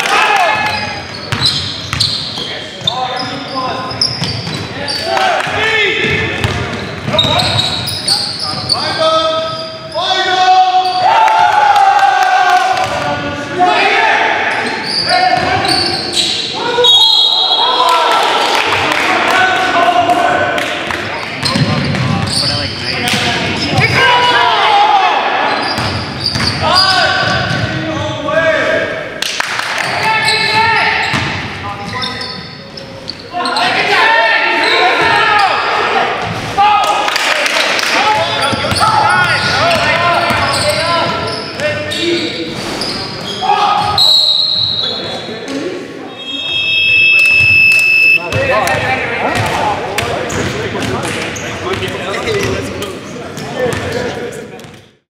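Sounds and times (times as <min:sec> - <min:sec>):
players shouting and chatting: 0:00.0 - 0:55.0
high steady tone: 0:46.2 - 0:48.2.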